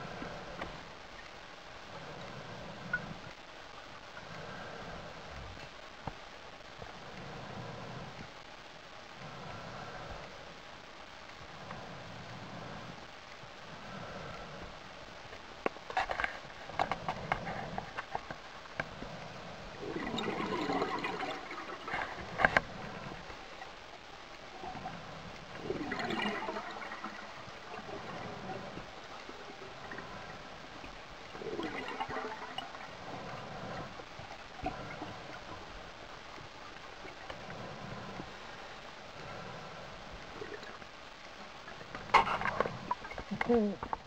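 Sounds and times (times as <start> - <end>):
faint clicks and crackles: 0.0 - 44.0
low steady hiss: 0.0 - 44.0
underwater hiss: 9.2 - 10.5, 24.4 - 41.0
underwater clicks and knocks: 15.6 - 19.0, 41.8 - 44.0.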